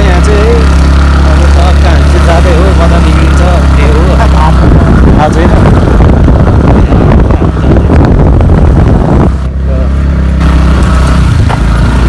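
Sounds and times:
motorcycle engine hum: 0.0 - 12.0
wind rush on microphone: 3.0 - 12.0.

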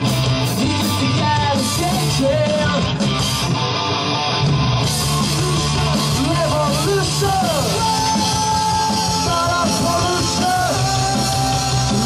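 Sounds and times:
punk rock band playing: 0.0 - 12.0.

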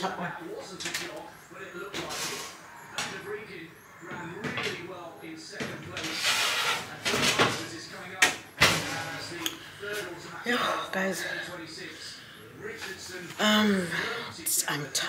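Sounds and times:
baking tray scraping into oven: 5.9 - 7.9.

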